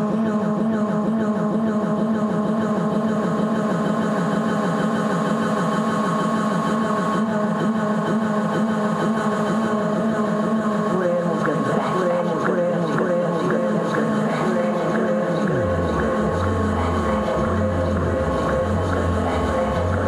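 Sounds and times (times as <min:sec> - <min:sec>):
synthesizer drone: 0:00.0 - 0:20.0.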